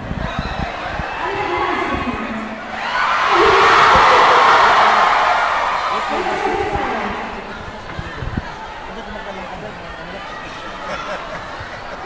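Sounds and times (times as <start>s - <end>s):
large crowd cheering: 0.0s - 12.0s.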